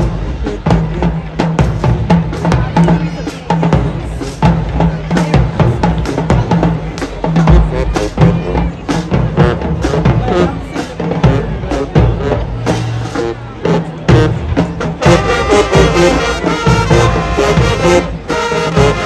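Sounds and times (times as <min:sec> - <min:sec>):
snare and bass drums: 0:00.0 - 0:19.0.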